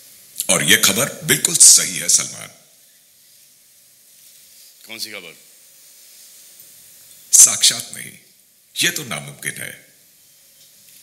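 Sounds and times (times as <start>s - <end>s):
faint high-pitched hiss: 0.0s - 11.0s
man speaking: 0.4s - 2.6s, 4.9s - 5.5s, 7.3s - 9.9s.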